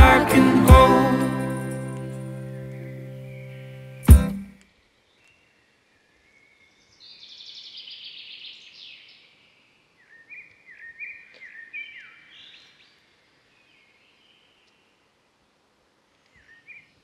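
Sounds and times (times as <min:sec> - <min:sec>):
songbird trilling and chirping: 0:10.0 - 0:13.0.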